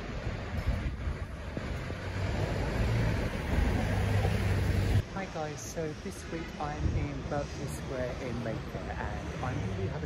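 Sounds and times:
vehicle engine rumbling: 0.0 - 5.3
city street traffic: 0.0 - 10.0.

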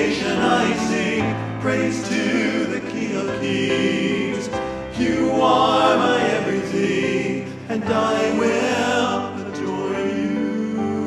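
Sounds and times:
choir singing in harmony: 0.0 - 11.0
keyboard accompaniment: 0.0 - 11.0.

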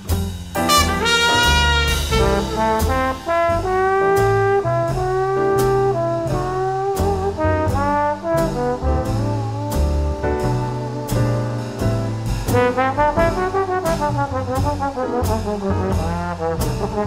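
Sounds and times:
bass line: 0.0 - 17.0
drum beats: 0.0 - 17.0
jazz band playing: 0.0 - 17.0
brass horn melody: 0.6 - 11.1, 12.5 - 17.0.

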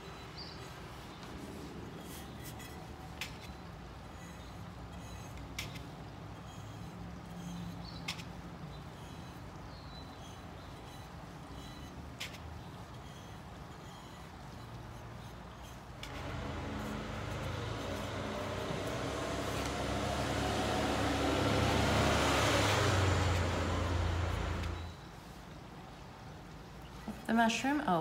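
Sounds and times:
heavy vehicle engine passing by: 16.0 - 24.9.

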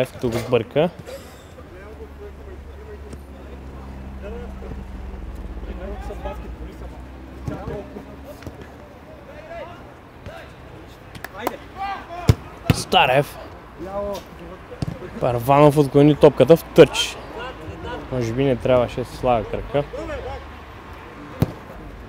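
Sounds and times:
distant players shouting: 0.9 - 22.0
steady low hum: 1.4 - 8.3
ball kick: 12.2 - 12.8.

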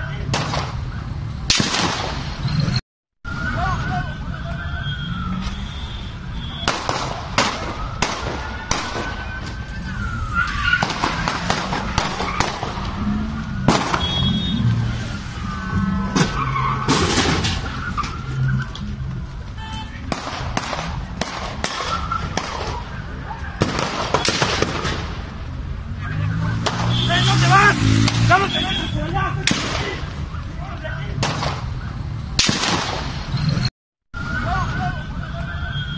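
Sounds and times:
traffic noise: 0.0 - 35.9
gunshots: 0.3 - 0.8, 1.5 - 2.4, 6.6 - 9.3, 10.8 - 13.0, 13.6 - 14.3, 20.1 - 22.8, 23.6 - 25.2, 29.4 - 30.1, 31.2 - 31.7, 32.4 - 33.3
siren wailing: 3.2 - 16.9, 17.6 - 19.2, 21.8 - 23.6, 34.2 - 35.9.

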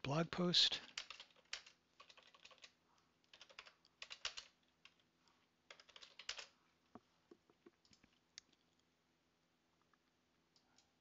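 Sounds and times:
typing on computer keyboard: 0.9 - 5.0, 5.7 - 6.5.

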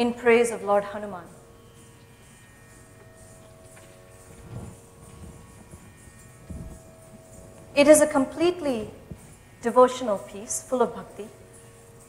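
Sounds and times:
faint steady drone: 0.0 - 12.0
soft low thumps: 3.4 - 9.6.

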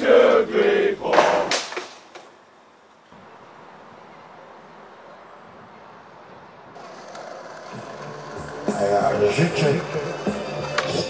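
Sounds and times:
road traffic hum: 0.0 - 11.0.

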